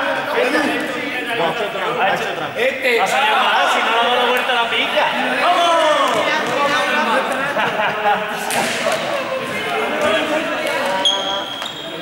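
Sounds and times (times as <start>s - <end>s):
students shouting and chattering: 0.0s - 12.0s.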